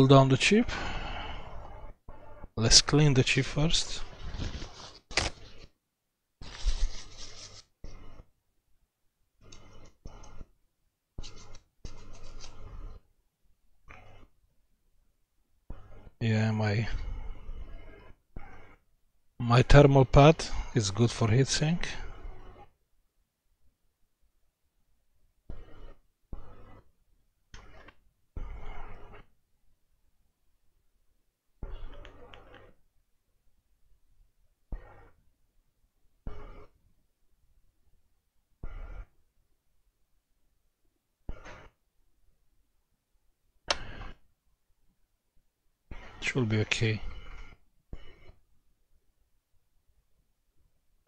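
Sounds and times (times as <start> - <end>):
hands rubbing and scraping laptop: 1.4 - 5.8, 6.4 - 8.3, 9.4 - 10.5, 11.2 - 13.1, 25.5 - 26.9, 27.6 - 29.3, 31.6 - 32.8, 34.7 - 35.2, 36.2 - 36.8, 38.6 - 39.2, 41.3 - 41.8, 43.7 - 44.3, 45.9 - 48.4
paper towel scrubbing: 3.6 - 5.7, 6.4 - 8.3, 11.2 - 12.9.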